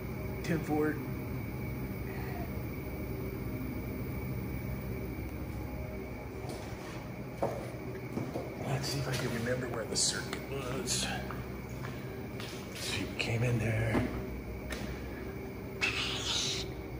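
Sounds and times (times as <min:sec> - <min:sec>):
evaporator fans humming: 0:00.0 - 0:16.9.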